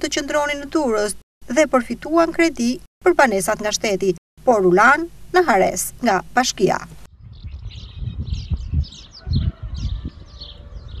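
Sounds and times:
wind rumble on microphone: 0:07.0 - 0:11.0
small birds chirping: 0:07.1 - 0:11.0.

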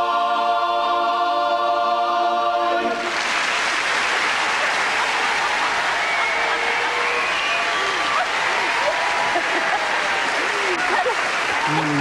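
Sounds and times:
studio audience applauding: 0:03.0 - 0:12.0.

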